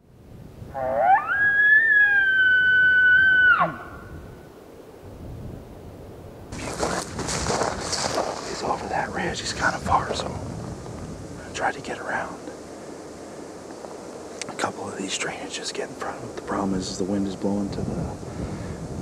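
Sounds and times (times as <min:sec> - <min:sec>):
elk bugling: 0:00.6 - 0:04.2
rustling noise: 0:06.5 - 0:14.6.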